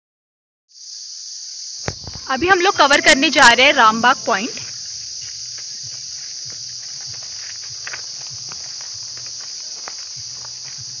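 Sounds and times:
insects chorus: 0.7 - 11.0
footsteps on dirt trail: 1.8 - 11.0.

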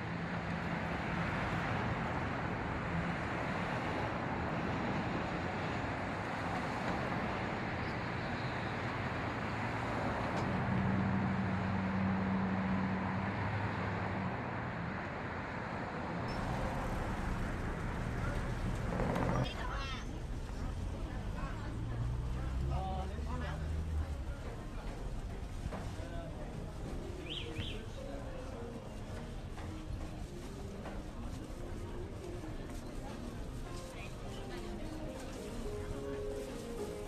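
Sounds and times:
distant road traffic rushing: 0.0 - 37.0.

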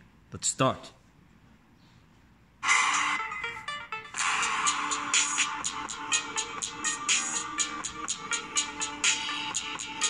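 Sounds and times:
dance music from phone speaker: 2.6 - 10.0.

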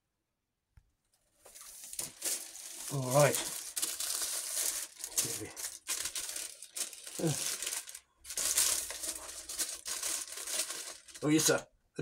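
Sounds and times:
packing material crinkling: 1.5 - 11.6.

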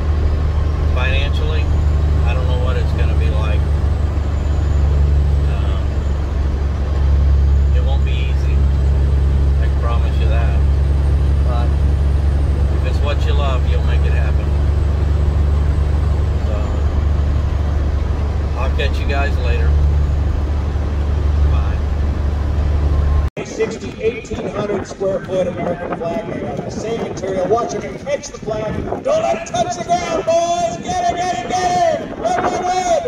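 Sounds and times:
truck diesel engine drone: 0.0 - 25.2
road noise inside cab: 0.0 - 25.9.

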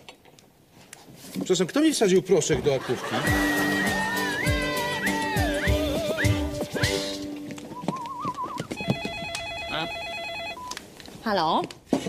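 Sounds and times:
telephone ringing with warbling trill: 8.5 - 10.8.

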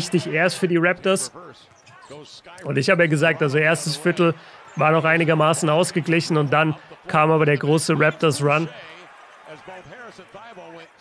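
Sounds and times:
commentator speaking: 0.0 - 11.0.

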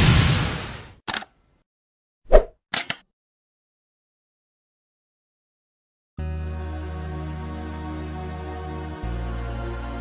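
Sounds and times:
loud pop: 0.0 - 1.0
quick clicks: 2.7 - 3.0.

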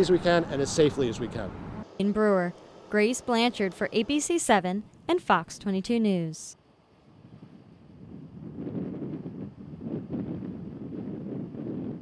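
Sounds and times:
wind buffeting microphone: 7.0 - 12.0.

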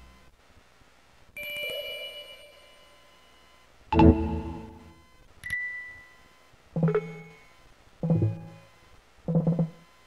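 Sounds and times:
synth chimes: 1.4 - 3.2.

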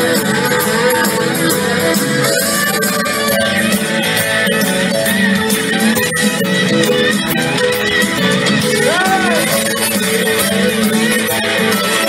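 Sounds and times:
guitar: 0.0 - 12.0
soul band playing: 0.0 - 12.0.

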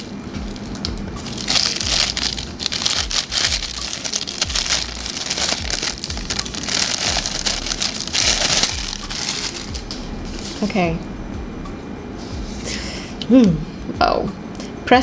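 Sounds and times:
plastic packaging crinkling: 0.0 - 9.9.

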